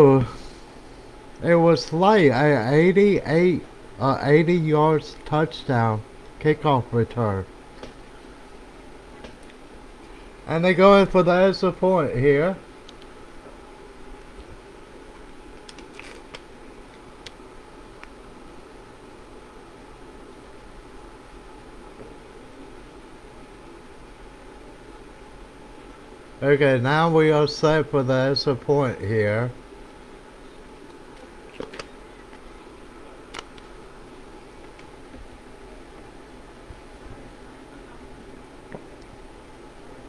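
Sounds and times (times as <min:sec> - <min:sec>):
low background hiss: 0:00.0 - 0:40.0
low background noise: 0:00.0 - 0:40.0.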